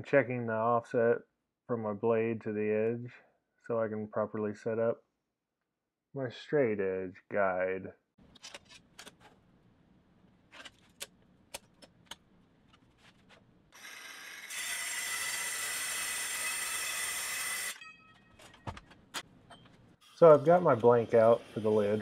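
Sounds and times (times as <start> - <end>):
circular saw cutting metal: 13.8 - 18.0, 20.0 - 22.0.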